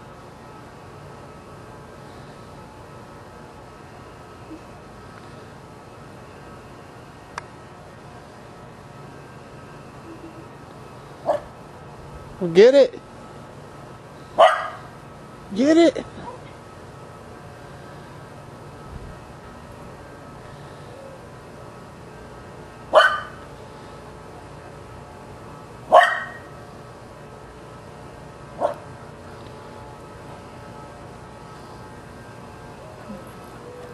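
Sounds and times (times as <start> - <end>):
dog barking: 11.3 - 11.5, 14.4 - 14.9, 22.9 - 23.4, 25.9 - 26.5, 28.6 - 28.8.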